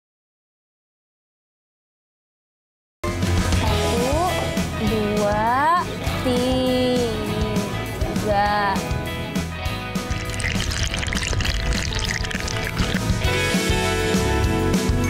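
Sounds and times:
background music: 3.0 - 15.0
water pouring into a basin: 10.0 - 13.4.

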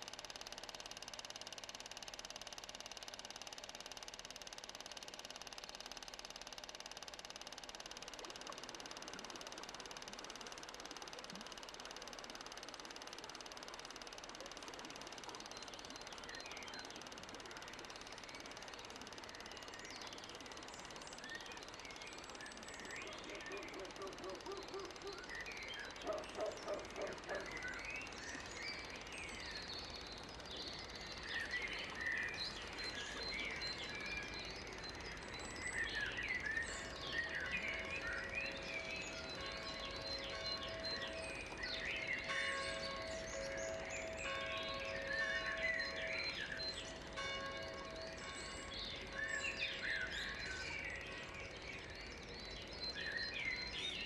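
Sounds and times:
birds chirping: 6.3 - 54.0
frog croaking: 26.0 - 27.5.

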